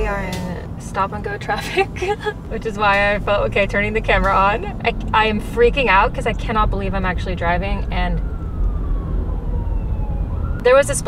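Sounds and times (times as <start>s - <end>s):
road noise rumble in car: 0.0s - 11.0s
distant police siren wail: 2.2s - 11.0s.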